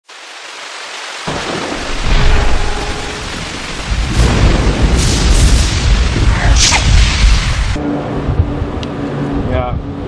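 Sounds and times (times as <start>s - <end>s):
rain hiss: 0.0s - 7.8s
deep rumble of thunder: 1.3s - 8.7s.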